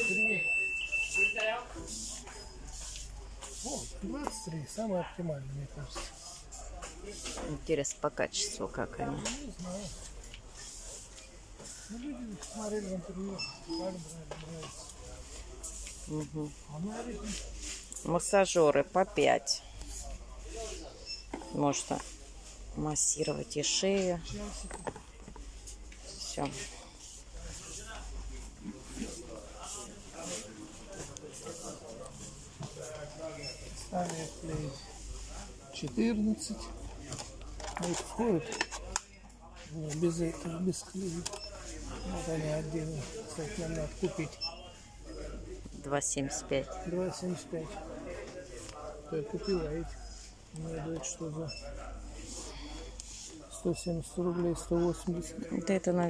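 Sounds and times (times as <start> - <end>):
low background noise: 0.0 - 56.0.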